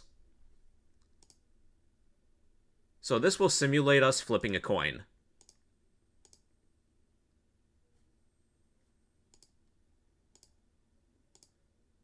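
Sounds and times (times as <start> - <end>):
computer mouse clicks: 0.9 - 1.4, 5.4 - 5.6, 6.2 - 6.5, 9.3 - 9.6, 10.3 - 10.6, 11.3 - 11.6.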